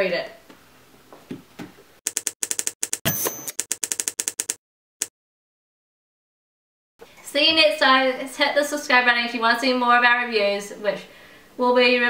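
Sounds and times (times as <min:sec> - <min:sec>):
typewriter bell ring: 0:02.9 - 0:04.2.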